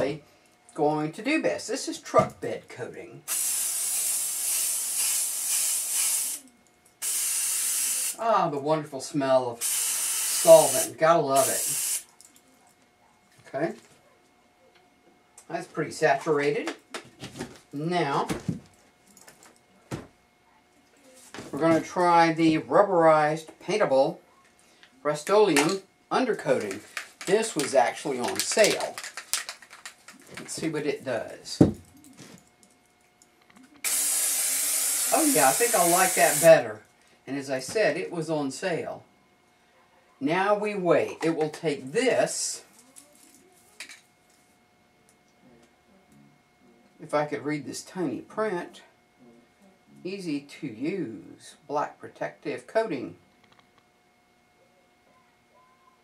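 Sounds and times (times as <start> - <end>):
aerosol can spraying: 3.3 - 6.4, 7.0 - 8.2, 9.6 - 12.0, 33.8 - 36.5.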